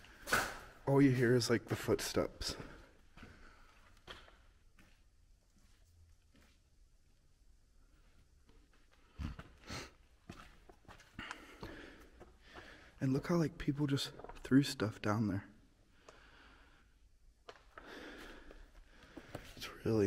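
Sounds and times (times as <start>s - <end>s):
faint footsteps and scuffs: 0.0s - 13.2s.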